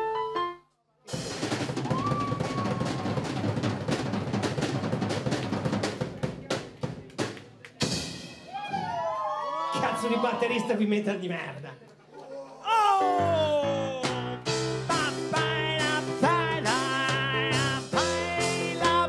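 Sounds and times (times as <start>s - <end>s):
electric keyboard tune: 0.0s - 0.7s, 13.0s - 19.0s
snare drum roll with cymbals: 1.2s - 8.4s.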